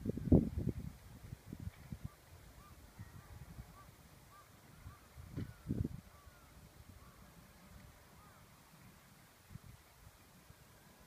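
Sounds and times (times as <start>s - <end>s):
wind buffeting microphone: 0.0s - 10.8s
faint short bird calls: 2.0s - 7.4s, 8.1s - 8.6s.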